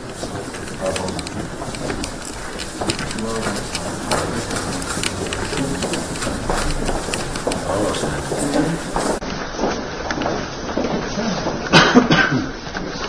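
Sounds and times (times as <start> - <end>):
footsteps: 0.0 - 11.7
people talking indistinctly: 0.3 - 9.2.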